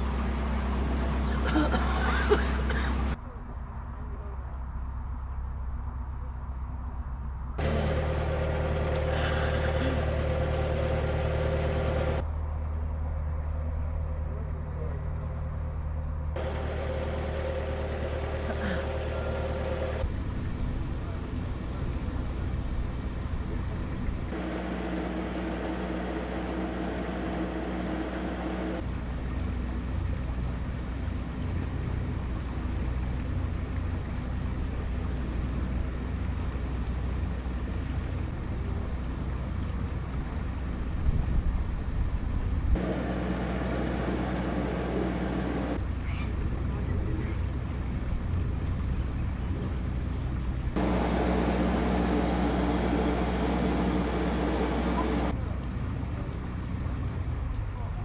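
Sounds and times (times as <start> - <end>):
diesel boat engine running: 0.0 - 3.2, 7.6 - 12.2, 16.4 - 20.2, 24.3 - 28.9, 42.8 - 45.8, 50.8 - 55.4
wind rumbling on microphone: 38.4 - 45.8.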